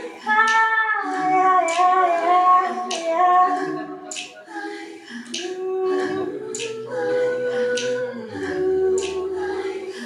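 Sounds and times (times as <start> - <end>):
women singing layered notes: 0.0 - 10.0.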